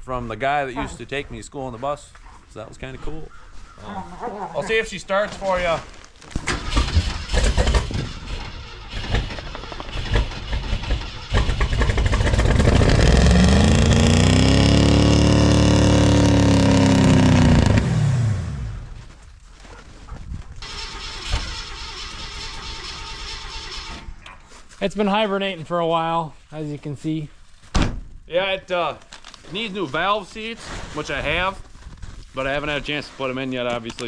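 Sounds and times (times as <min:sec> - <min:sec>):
car engine cranking: 0:06.3 - 0:18.8, 0:20.6 - 0:24.2
car engine revving and idling: 0:06.6 - 0:18.9.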